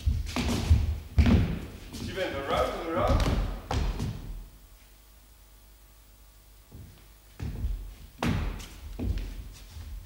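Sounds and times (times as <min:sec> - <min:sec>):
feet thudding on wooden floor: 0:00.0 - 0:02.1, 0:06.7 - 0:10.0.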